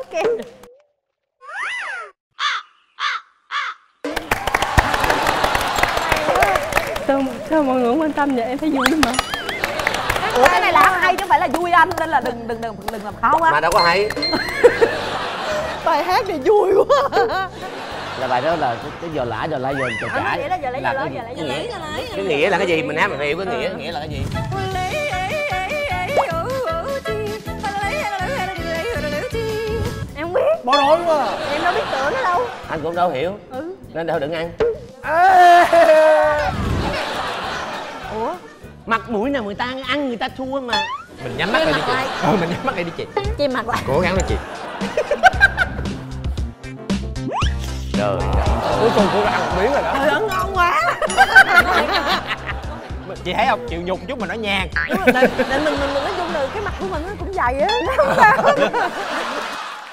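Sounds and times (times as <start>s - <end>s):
crow cawing sound effect: 2.3s - 3.9s
bouncy rhythmic accompaniment: 5.4s - 35.0s, 36.9s - 59.8s
loud mix of voices: 47.9s - 53.3s.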